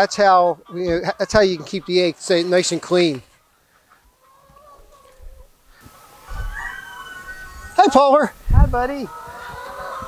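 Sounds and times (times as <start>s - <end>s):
hen calling: 0.0s - 10.0s.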